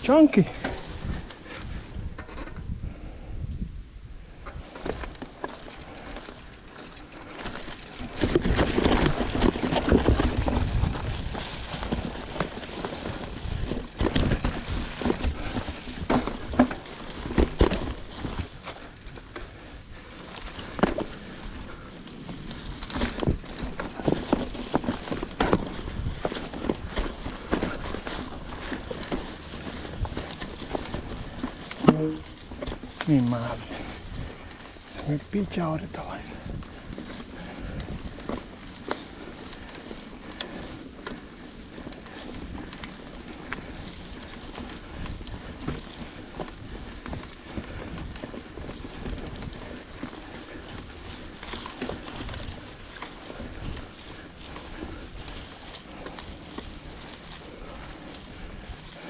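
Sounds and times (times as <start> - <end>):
bike knocking and rattling: 0.0 - 3.0, 4.3 - 59.0
bike tyres rolling through leaves: 0.0 - 59.0.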